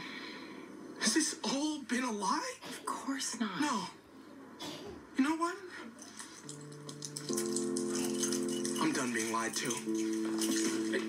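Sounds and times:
steady high hiss: 4.1 - 11.0
sustained chord: 6.4 - 11.0.

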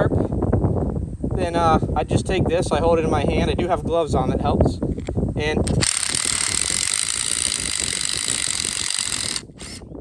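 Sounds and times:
impact driver grinding metal: 5.6 - 9.9.

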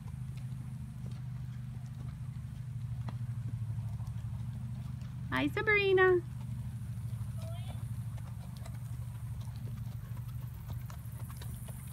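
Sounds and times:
horse hooves on dirt: 0.0 - 11.9
steady low hum: 0.0 - 11.9.

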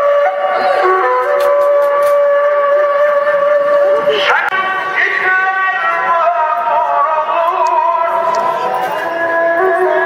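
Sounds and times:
flute-like wind instrument note: 0.0 - 4.3, 9.3 - 10.0.

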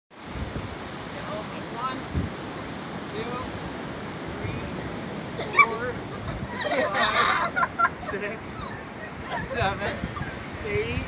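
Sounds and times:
ocean surf: 0.1 - 11.0
wind buffeting microphone: 0.1 - 11.0.

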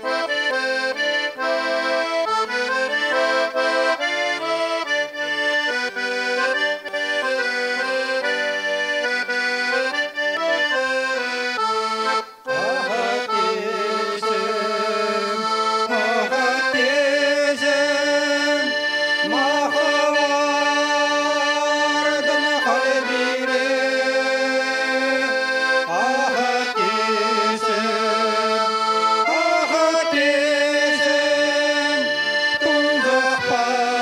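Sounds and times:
button accordion folk tune: 0.0 - 34.0
man singing with vibrato: 0.0 - 34.0.

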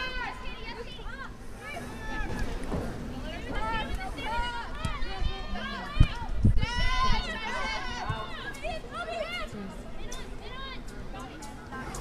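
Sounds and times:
high voices shouting and cheering: 0.0 - 10.9.

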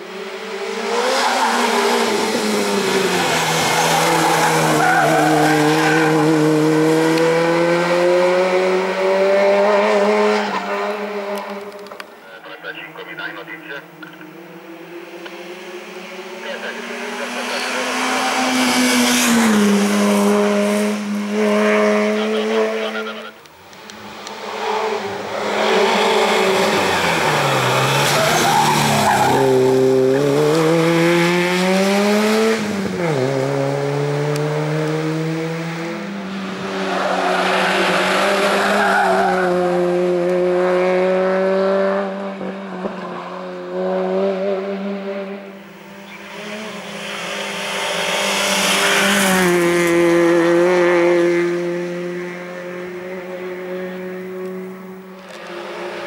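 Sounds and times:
race car engine at high revs: 0.0 - 56.0.

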